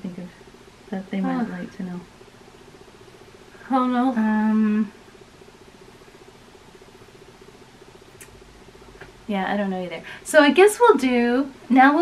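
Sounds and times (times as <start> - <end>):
faint fluttering buzz: 0.0 - 12.0.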